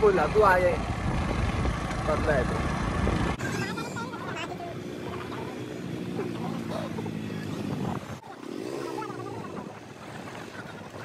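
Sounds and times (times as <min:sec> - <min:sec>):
motorcycle engine running: 0:00.0 - 0:08.2
wind on microphone: 0:00.6 - 0:03.8, 0:07.3 - 0:11.0.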